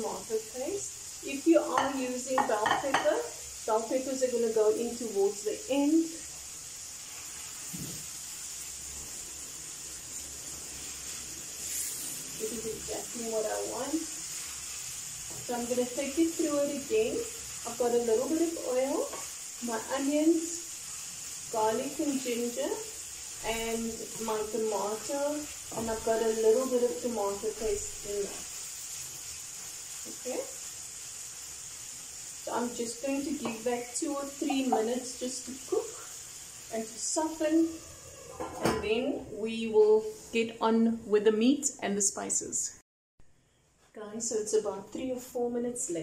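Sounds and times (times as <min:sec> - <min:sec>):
gas flame: 0:00.0 - 0:39.4
stirring in a frying pan: 0:00.0 - 0:40.5
vegetables sizzling in a frying pan: 0:00.0 - 0:42.8, 0:43.7 - 0:46.0.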